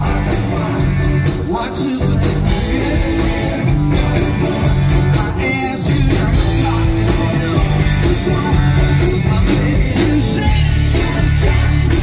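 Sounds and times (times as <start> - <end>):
electric guitar: 0.0 - 12.0
live rock band instrumental: 0.0 - 12.0.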